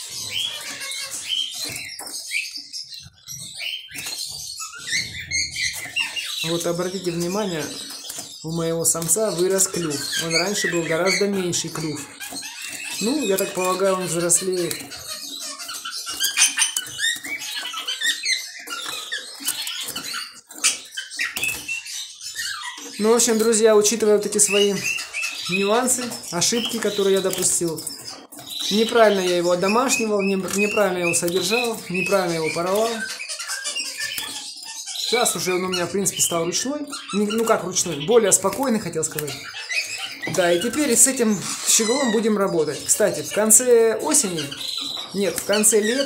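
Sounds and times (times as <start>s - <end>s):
finches chirping: 0.0s - 46.0s.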